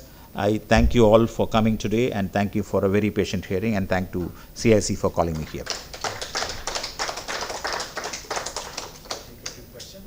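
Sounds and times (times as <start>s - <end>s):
audience applause: 5.0s - 9.6s.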